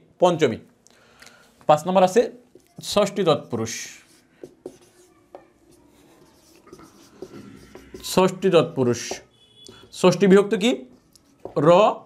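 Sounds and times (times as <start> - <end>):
marker squeaking on whiteboard: 2.3 - 11.7
marker tapping: 2.4 - 11.7.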